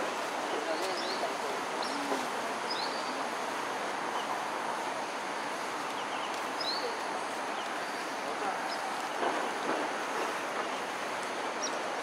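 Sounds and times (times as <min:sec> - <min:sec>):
outdoor ambience: 0:00.0 - 0:12.0.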